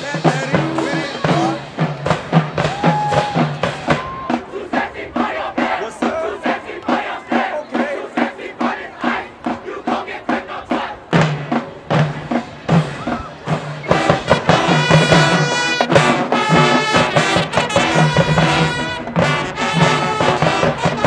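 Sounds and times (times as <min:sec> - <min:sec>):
drumline playing cadence: 0:00.0 - 0:21.0
marching band playing: 0:00.0 - 0:21.0
people shouting: 0:00.8 - 0:01.7, 0:02.6 - 0:11.1, 0:12.9 - 0:15.9.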